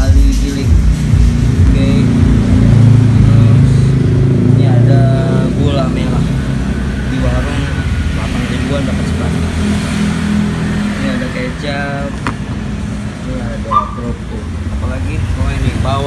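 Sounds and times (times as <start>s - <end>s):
low engine rumble: 0.0s - 16.0s.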